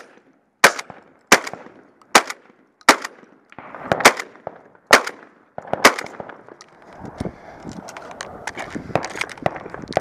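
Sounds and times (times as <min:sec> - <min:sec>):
metallic clicks of shotgun loading: 0:07.6 - 0:09.5.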